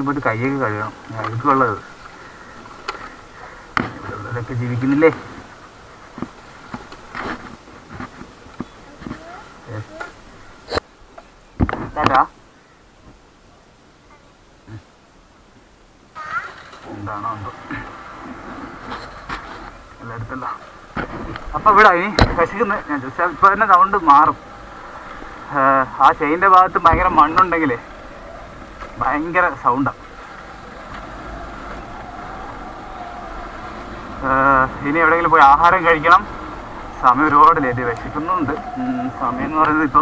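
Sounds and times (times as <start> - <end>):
children talking and calling out: 8.6 - 10.8, 16.2 - 17.0, 23.6 - 40.0
man's voice: 25.5 - 27.8.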